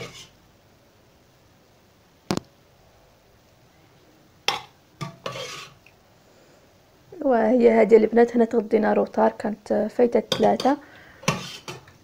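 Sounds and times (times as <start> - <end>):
spoon scraping dish: 0.0 - 0.4, 4.5 - 5.8, 10.3 - 12.0.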